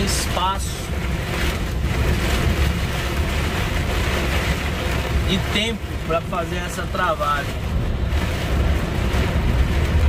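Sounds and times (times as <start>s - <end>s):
rain hissing: 0.0s - 10.0s
truck engine and road rumble: 0.0s - 10.0s
wet tyres on road: 0.0s - 10.0s.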